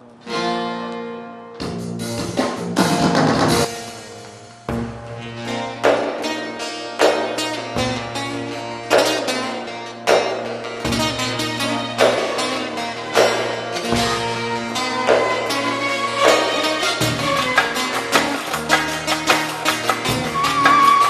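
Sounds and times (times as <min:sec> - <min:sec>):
plucked string instrument folk music: 0:00.0 - 0:21.0
hard strummed accents: 0:00.2 - 0:21.0.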